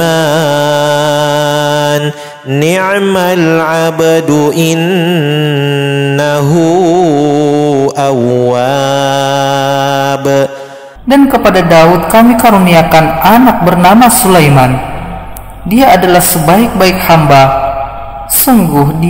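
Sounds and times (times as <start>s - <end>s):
person chanting melodic recitation: 0.0s - 19.0s.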